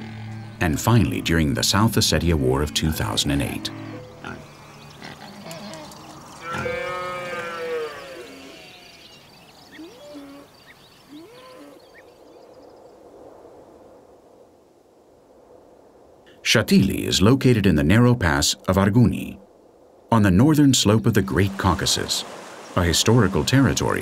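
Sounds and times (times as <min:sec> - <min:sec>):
faint ambient sound: 0:00.0 - 0:24.0
cow mooing: 0:03.5 - 0:09.0.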